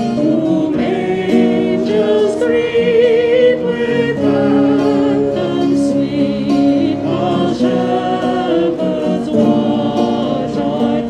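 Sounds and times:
acoustic guitar: 0.0 - 11.0
group singing a carol: 0.0 - 11.0
keyboard: 0.0 - 11.0.

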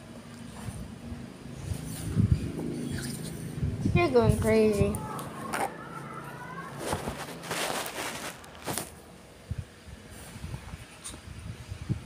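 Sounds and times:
rustling against cushions: 6.7 - 9.1.

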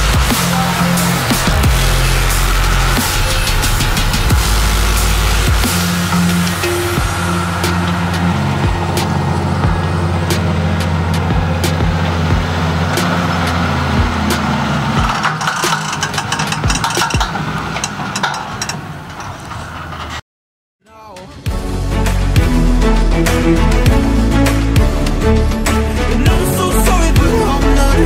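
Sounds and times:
background music with steady beat: 0.0 - 18.4, 20.9 - 28.0
tractor diesel engine under load: 0.0 - 20.2, 21.6 - 28.0.

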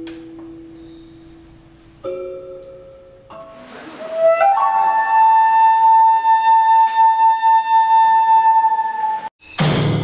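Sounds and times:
wooden flute long high note: 3.5 - 9.3.

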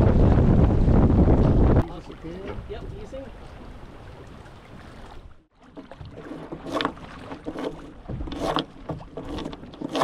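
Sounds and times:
water slapping against a hull: 0.0 - 10.0.

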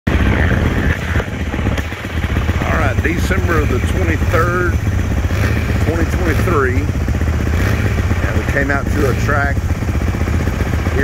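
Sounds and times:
dirt bike engine running: 0.1 - 11.0.

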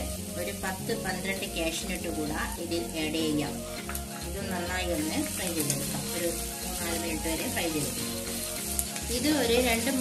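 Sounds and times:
onions sizzling in oil: 0.0 - 10.0.

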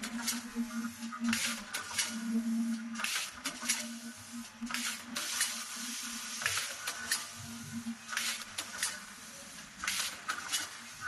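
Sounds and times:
machine clicks: 0.0 - 4.0, 4.6 - 5.6, 6.4 - 7.4, 8.1 - 9.2, 9.8 - 10.9
packing machine hiss: 0.2 - 11.0.

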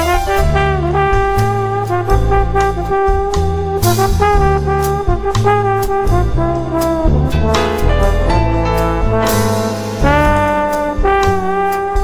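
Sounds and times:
brass lead melody: 0.0 - 12.0
drums with cymbal strikes: 0.0 - 12.0
upright bass: 0.0 - 12.0.

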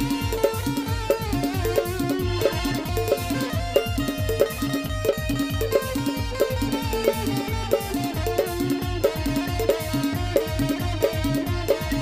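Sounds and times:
drums keeping steady beat: 0.0 - 12.0
sustained melody line: 0.0 - 12.0.

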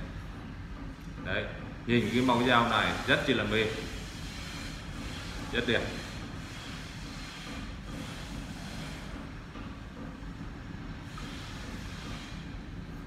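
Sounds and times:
low room rumble: 0.0 - 13.0.

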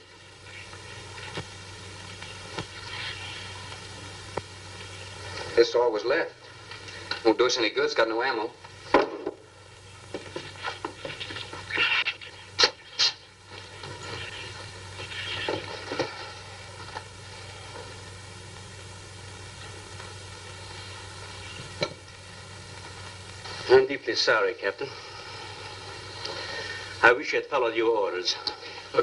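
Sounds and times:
film soundtrack hiss and hum: 0.0 - 29.0.

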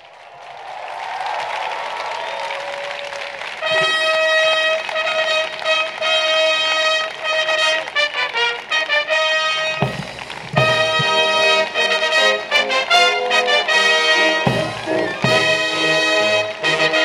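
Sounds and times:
applause: 0.0 - 17.0
military brass band playing: 3.6 - 17.0.

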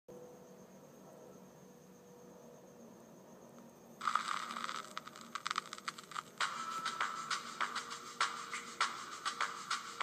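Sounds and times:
faint electrical hum: 0.1 - 10.0
scratchy crackling with clicks: 4.0 - 6.6.

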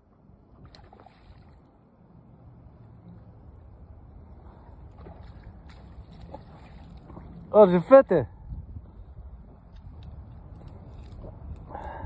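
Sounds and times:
wind buffeting microphone: 3.3 - 12.0.

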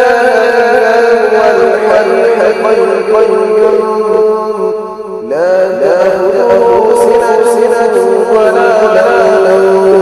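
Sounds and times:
man reciting melodically: 0.0 - 10.0.

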